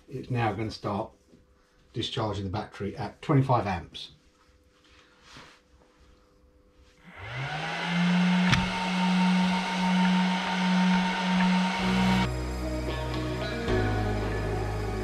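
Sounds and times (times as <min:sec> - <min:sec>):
cooling fan whine: 0:07.0 - 0:12.6.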